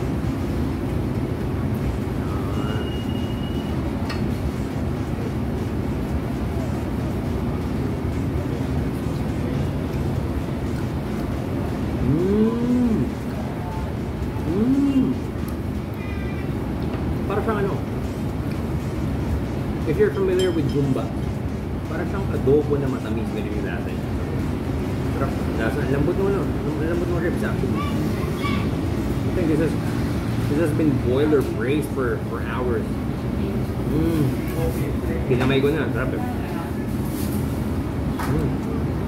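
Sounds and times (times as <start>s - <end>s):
low room rumble: 0.0s - 39.0s
man humming mmm: 12.0s - 13.4s, 14.4s - 15.3s, 33.9s - 34.5s.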